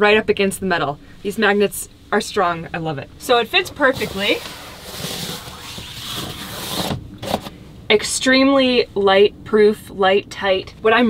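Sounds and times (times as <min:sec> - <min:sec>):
hand rubbing fabric: 0:03.8 - 0:07.4.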